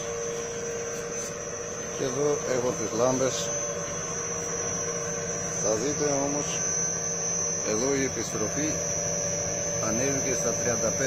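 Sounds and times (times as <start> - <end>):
electrical hum: 0.0 - 11.0
high steady whine: 0.0 - 11.0
motor-generator set running: 0.0 - 11.0.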